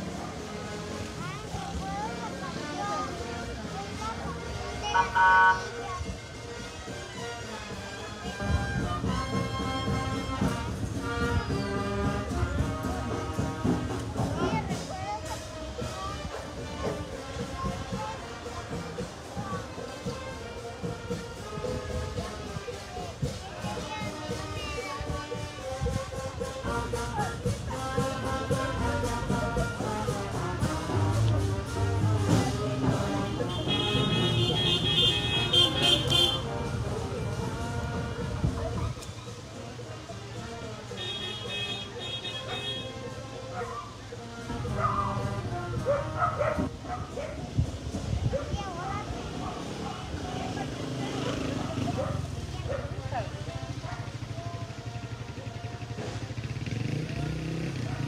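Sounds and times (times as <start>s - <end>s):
brass band playing: 0.0s - 1.5s, 2.5s - 38.8s, 40.2s - 46.9s
voices: 0.0s - 58.0s
shrill high tone: 5.0s - 5.6s.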